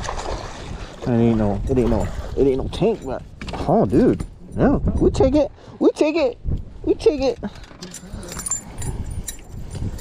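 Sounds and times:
wind on microphone: 0.0 - 5.6, 6.4 - 10.0
fishing tackle clicks and rattles: 7.3 - 10.0.

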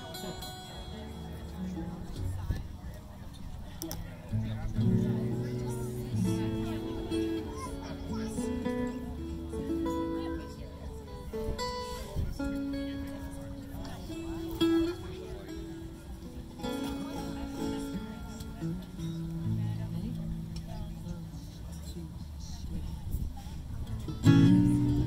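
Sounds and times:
plucked strings being tuned: 0.0 - 22.7, 23.8 - 25.0.

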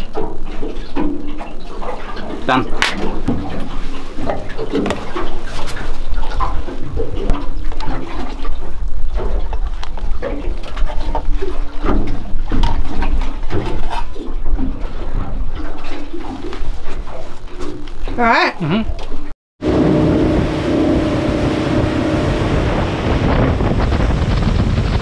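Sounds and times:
water sloshing against boat hull: 0.0 - 19.3.

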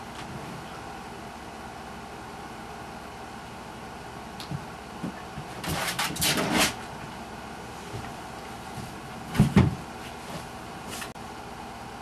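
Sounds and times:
plastic chair knocking on carpet: 9.3 - 9.9.

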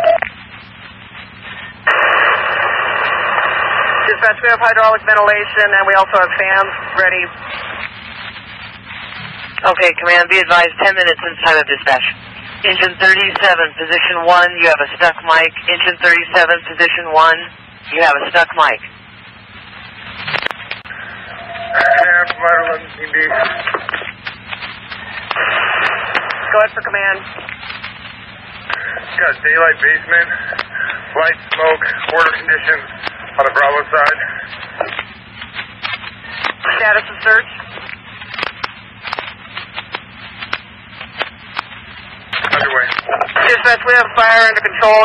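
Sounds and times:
radio hiss and static: 0.0 - 45.0
radio voice: 1.4 - 7.9, 9.1 - 18.9, 20.2 - 41.2, 41.9 - 45.0
sharp radio clicks: 1.6 - 5.4, 8.7 - 16.9, 20.1 - 29.4, 30.0 - 44.7
sharp crackling clicks: 20.1 - 20.9, 23.4 - 26.5, 27.3 - 28.9, 32.9 - 33.4, 34.0 - 43.4.

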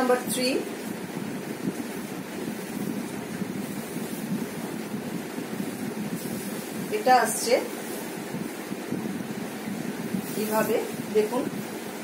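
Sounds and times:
low rushing background noise: 0.0 - 12.0.

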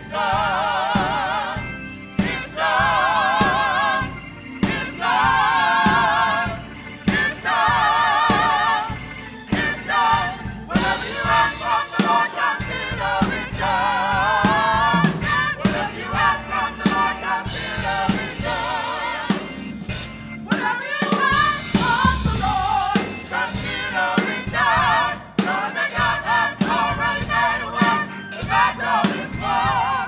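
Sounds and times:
gospel choir singing: 0.0 - 30.0
live band playing: 0.0 - 30.0.

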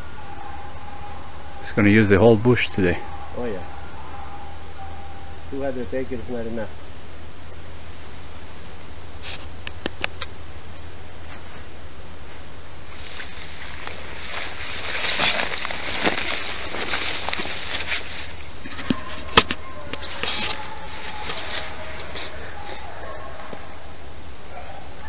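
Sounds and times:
distant hounds baying: 0.0 - 6.6, 15.0 - 25.0
brush rustling: 7.8 - 24.8.

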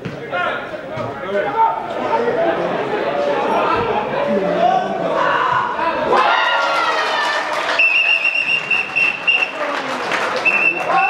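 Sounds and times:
voices at football match: 0.0 - 11.0
shrill whistle blast: 7.8 - 9.5, 10.4 - 11.0.

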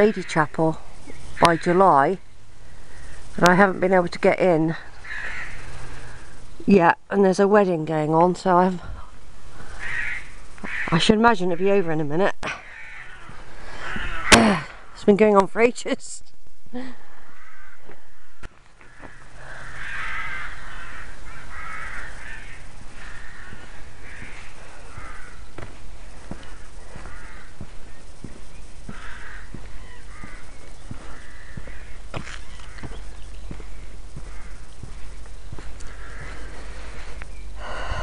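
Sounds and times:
crows cawing: 0.0 - 3.3, 4.7 - 6.4, 9.5 - 11.0, 12.4 - 15.0, 17.0 - 38.0
footsteps on grass: 12.7 - 14.4, 17.7 - 38.0
low microphone rumble: 21.1 - 38.0.

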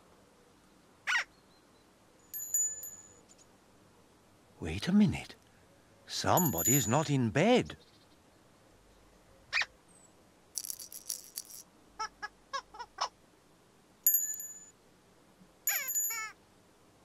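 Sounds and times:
bright bell-like ding: 6.4 - 6.9, 14.1 - 14.7
cartoon squeak: 15.7 - 16.4.

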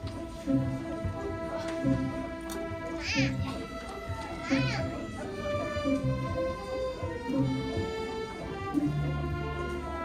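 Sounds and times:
string orchestra playing: 0.0 - 10.0.

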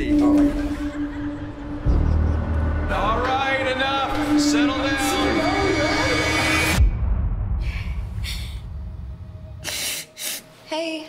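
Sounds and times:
deep low hit: 1.6 - 9.6.

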